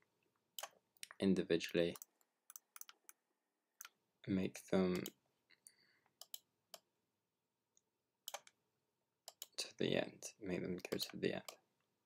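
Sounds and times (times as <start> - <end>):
computer mouse clicks: 1.9 - 3.2, 6.1 - 6.9, 8.2 - 8.6, 9.3 - 9.6.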